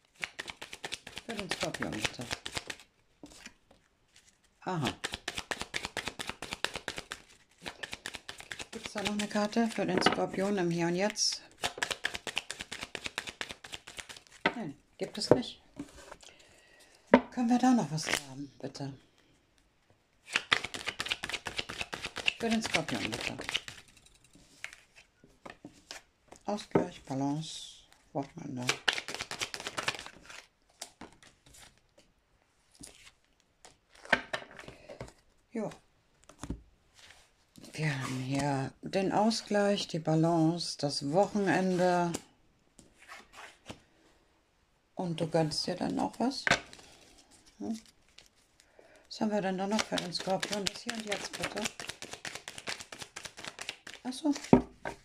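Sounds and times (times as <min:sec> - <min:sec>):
cards clicking and rubbing: 0:00.0 - 0:03.6, 0:04.2 - 0:14.4, 0:20.2 - 0:25.0, 0:28.6 - 0:31.8, 0:49.6 - 0:54.6.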